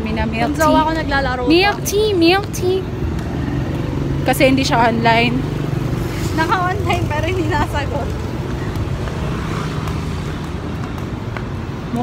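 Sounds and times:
nearby engine humming: 0:00.0 - 0:12.0
rumble of road traffic: 0:00.0 - 0:12.0.

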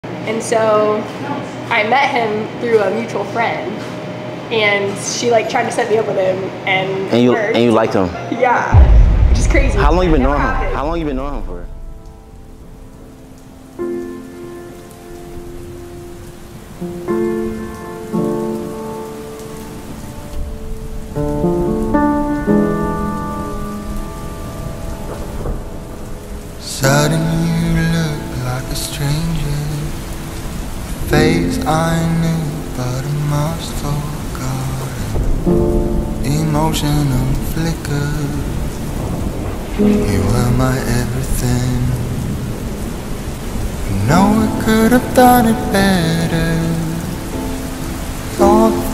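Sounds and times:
voice-like sound: 0:08.7 - 0:11.7
low rumble: 0:08.7 - 0:13.5
thunder rumble: 0:08.7 - 0:48.9
rain on pavement: 0:11.2 - 0:48.9.

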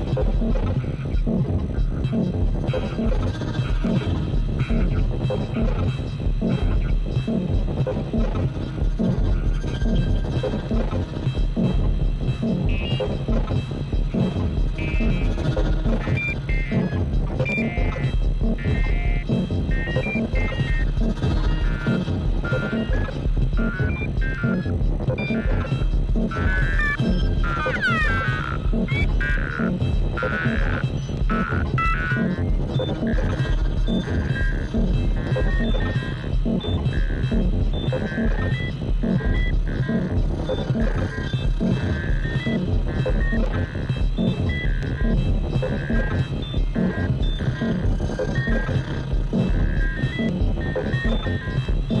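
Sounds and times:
throbbing low synth pulse: 0:00.0 - 0:52.0.

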